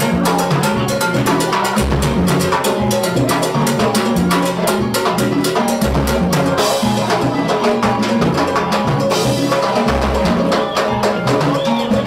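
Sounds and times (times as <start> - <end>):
salsa music: 0.0 - 12.0.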